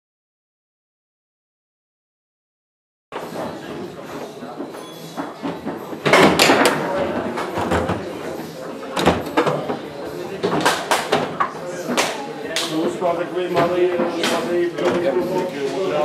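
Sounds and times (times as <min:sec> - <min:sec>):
background voices: 0:03.2 - 0:16.0
foosball ball clacking: 0:04.6 - 0:08.3, 0:08.9 - 0:15.2.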